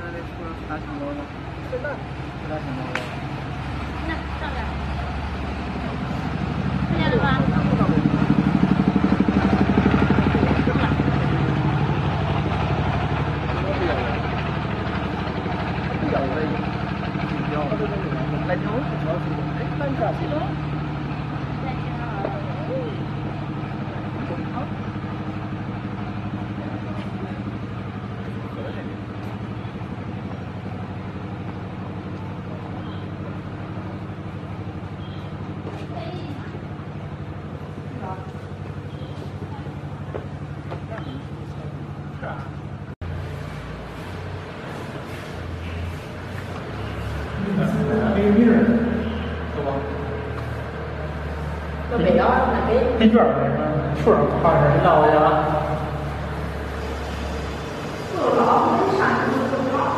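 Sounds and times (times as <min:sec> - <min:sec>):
vehicle engine humming: 0:00.0 - 0:59.9
indistinct voices: 0:46.9 - 0:59.9.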